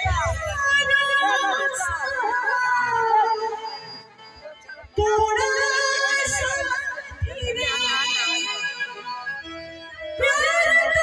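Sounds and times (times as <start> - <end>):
woman singing: 0.0 - 3.7, 5.0 - 8.9, 10.1 - 11.0
live musical accompaniment: 0.0 - 11.0.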